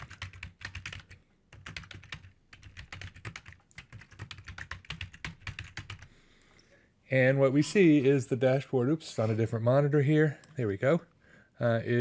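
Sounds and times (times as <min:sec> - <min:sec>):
typing on computer keyboard: 0:00.0 - 0:06.1.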